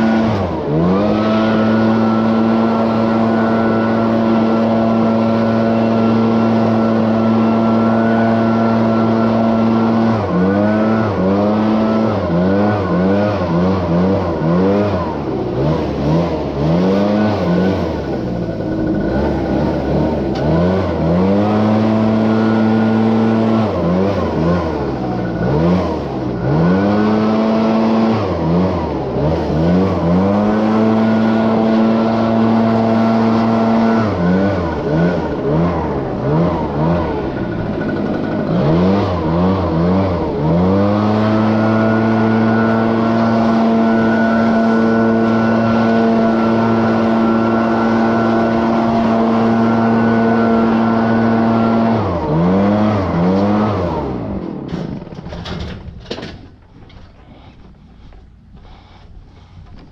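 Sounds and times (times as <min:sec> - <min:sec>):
leaf blower revving: 0:00.0 - 0:55.7.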